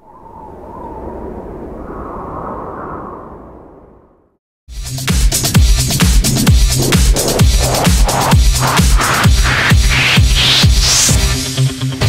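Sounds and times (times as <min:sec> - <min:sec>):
whoosh and rumble: 0:05.4 - 0:11.3
faint rising tone: 0:05.9 - 0:10.6.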